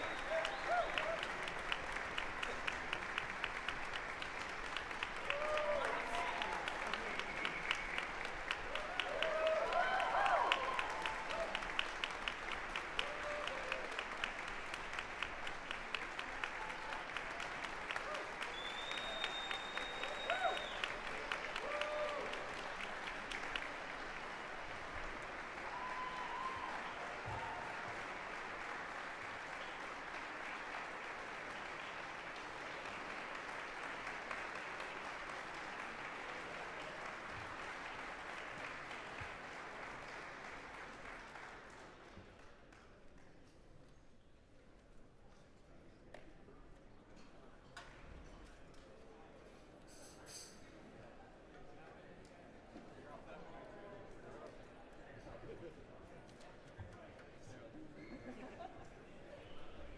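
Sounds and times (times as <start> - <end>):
shouted cheers: 0.0 - 1.6, 5.2 - 7.8, 8.7 - 11.8, 12.9 - 14.0, 18.0 - 22.7, 25.6 - 28.0
audience applauding: 0.0 - 43.3
high whistle: 18.5 - 20.8.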